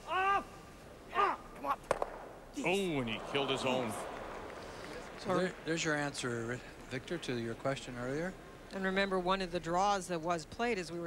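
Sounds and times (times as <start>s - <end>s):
person shouting: 0.0s - 1.5s.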